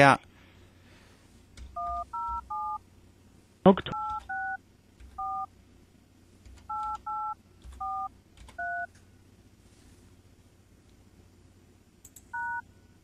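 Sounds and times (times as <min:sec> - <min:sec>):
telephone keypad tones: 0:01.8 - 0:02.8, 0:03.9 - 0:04.6, 0:05.2 - 0:05.5, 0:06.7 - 0:08.9, 0:12.3 - 0:12.6.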